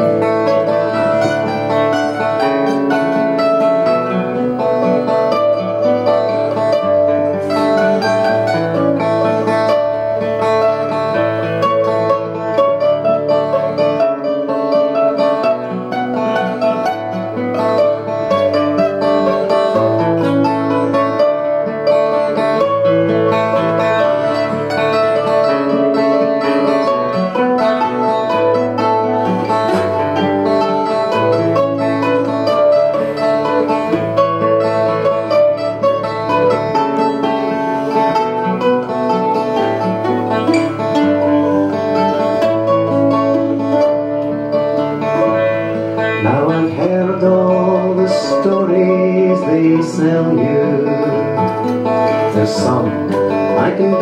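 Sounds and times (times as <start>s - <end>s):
acoustic guitar: 0.0s - 54.0s
mandolin picking melody: 0.0s - 54.0s.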